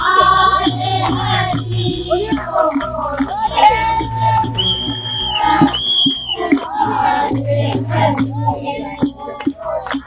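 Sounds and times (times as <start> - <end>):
women singing together: 0.0 - 10.0
hand-clapping: 2.3 - 10.0.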